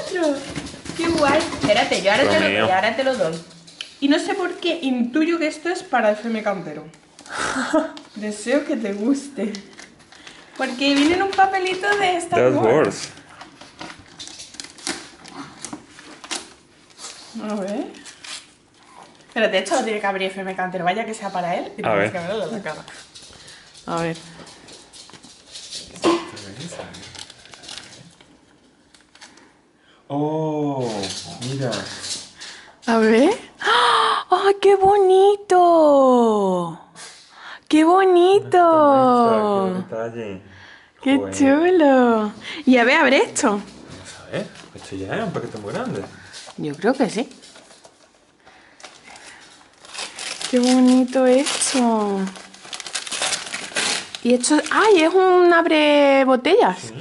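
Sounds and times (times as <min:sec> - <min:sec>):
person speaking: 0:02.0 - 0:02.9, 0:12.2 - 0:13.2, 0:38.2 - 0:39.9, 0:56.8 - 0:57.0
paper rustling and crinkling: 0:08.0 - 0:20.0, 0:22.2 - 0:29.5, 0:43.4 - 0:55.5.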